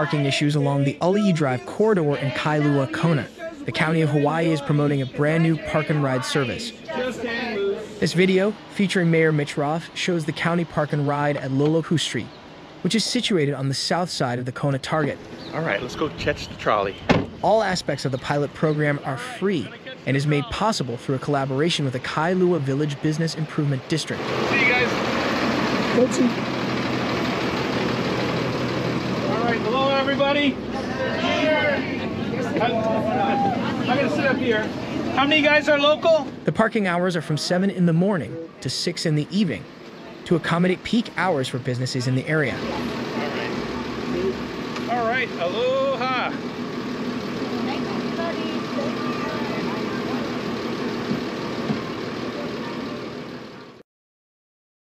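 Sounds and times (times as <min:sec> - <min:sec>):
faint voices: 0:00.0 - 0:25.1, 0:29.2 - 0:46.5, 0:47.3 - 0:51.2
bus engine idling: 0:00.0 - 0:53.8.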